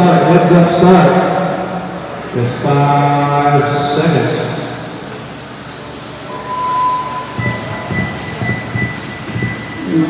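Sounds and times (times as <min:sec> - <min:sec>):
electronic start beeps: 0:06.3 - 0:10.0.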